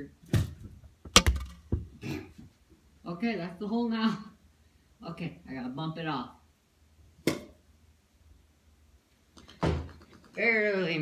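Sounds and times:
hard objects knocking: 1.1 - 2.0.

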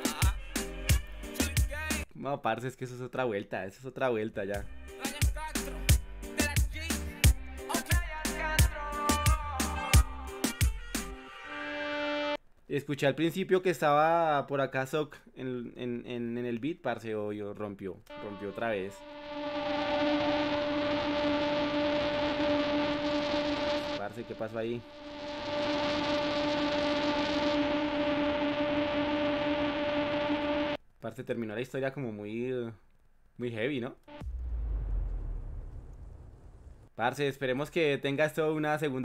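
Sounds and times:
buzzing hum: 18.1 - 30.8, 34.1 - 36.8
deep low rumble: 34.2 - 36.9.

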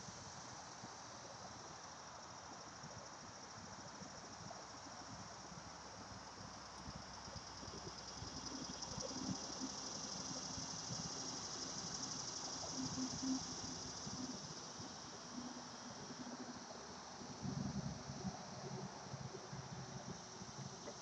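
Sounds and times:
insects chorus in trees: 0.0 - 21.0.

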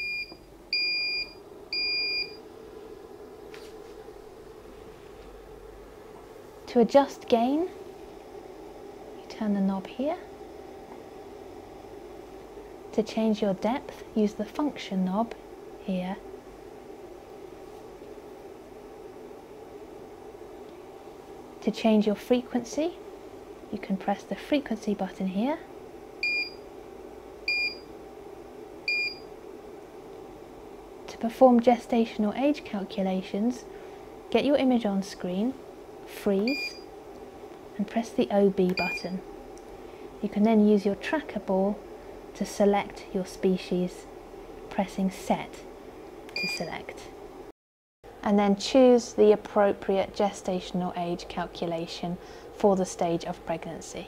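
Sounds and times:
low steady hum: 0.0 - 47.5, 48.1 - 54.0
electronic key beeps: 38.8 - 39.1.

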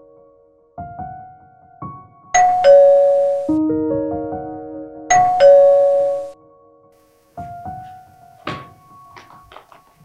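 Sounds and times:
two-tone electronic doorbell chime: 2.4 - 3.6, 5.1 - 6.4.

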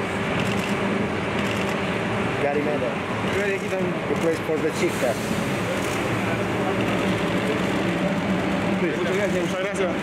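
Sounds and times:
bus engine idling: 0.0 - 10.0
people talking: 8.8 - 10.0.

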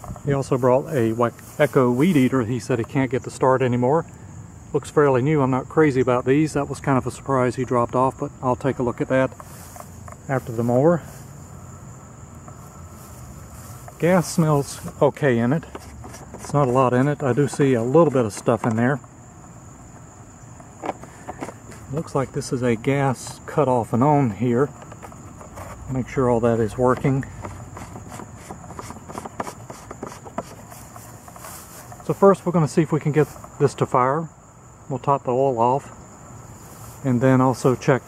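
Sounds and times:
high insect drone: 0.0 - 38.0
hands rubbing cable: 9.3 - 11.3, 12.5 - 18.9, 20.7 - 22.4, 24.7 - 32.4.

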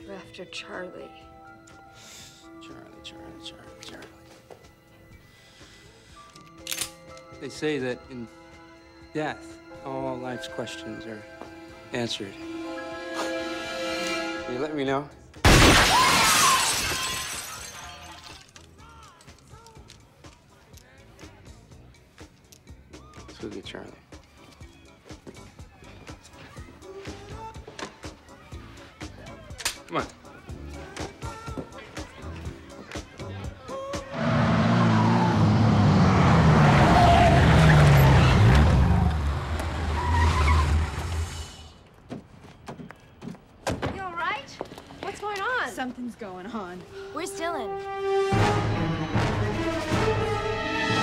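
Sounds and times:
glass window shattering: 15.4 - 18.6
glass pieces falling: 15.5 - 18.7
car engine running loud: 34.1 - 39.9
tyres squealing: 34.1 - 41.7.

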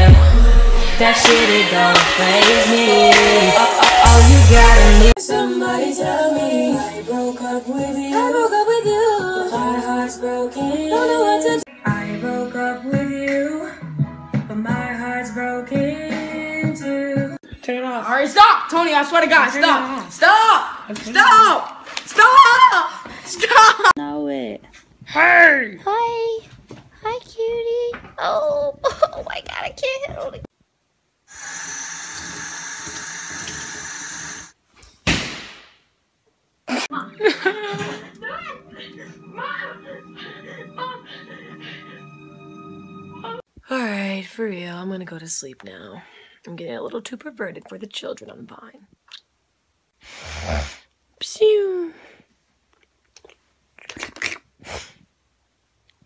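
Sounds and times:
woman singing slow melody: 0.0 - 17.4.

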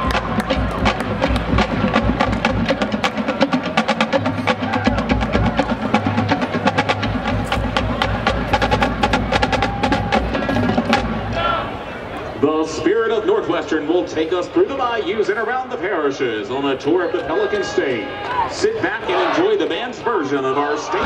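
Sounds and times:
bass drums: 0.0 - 11.6.

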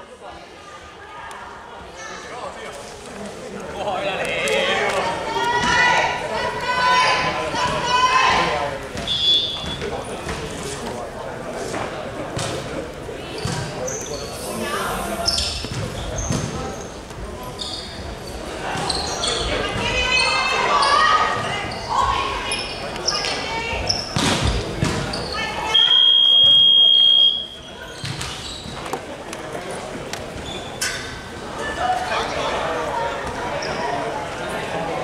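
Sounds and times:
players' voices: 0.0 - 35.0
sneakers squeaking: 9.0 - 10.6, 13.2 - 25.9, 27.4 - 29.1, 30.3 - 31.3, 33.2 - 34.1.

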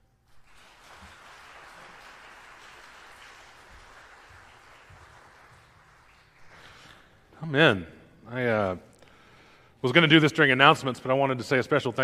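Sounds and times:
congregation clapping: 0.0 - 7.3.

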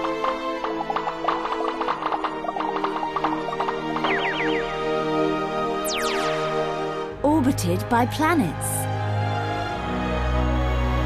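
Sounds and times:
gentle background music: 0.0 - 11.0.

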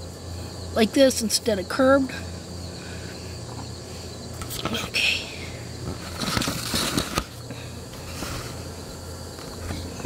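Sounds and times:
insects trilling: 0.0 - 10.0
low steady hum: 0.0 - 10.0.

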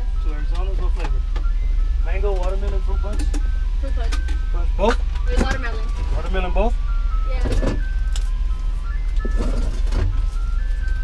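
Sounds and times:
ice cream truck jingle: 0.0 - 11.0
truck engine idling: 0.0 - 11.0.

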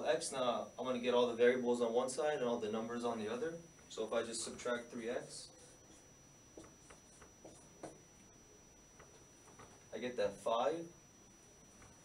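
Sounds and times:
marker writing on whiteboard: 5.5 - 8.0.

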